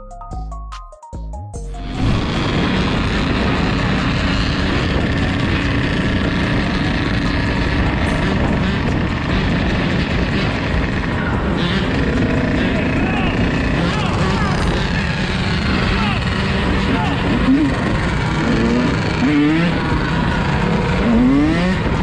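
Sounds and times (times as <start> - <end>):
wind noise on microphone: 1.8 - 12.6
dirt bike engines running: 1.8 - 22.0.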